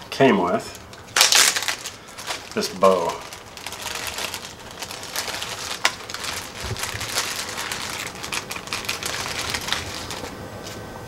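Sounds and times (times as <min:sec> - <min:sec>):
plastic bag crinkling: 0:00.6 - 0:10.4.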